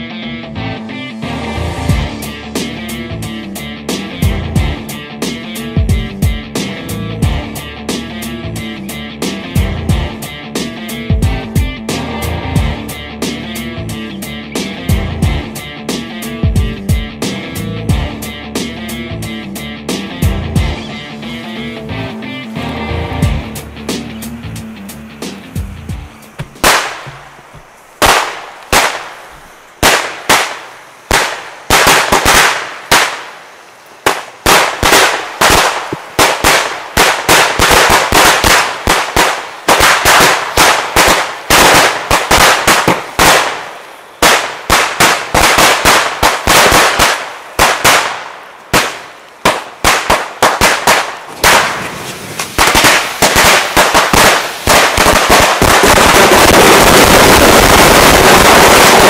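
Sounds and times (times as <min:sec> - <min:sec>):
firecrackers banging and crackling: 0:25.2 - 0:59.0.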